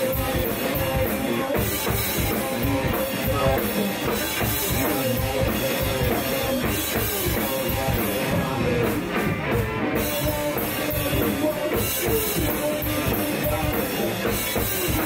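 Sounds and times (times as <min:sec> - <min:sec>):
drum kit: 0:00.0 - 0:15.0
electric guitars: 0:00.0 - 0:15.0
person singing: 0:00.0 - 0:15.0.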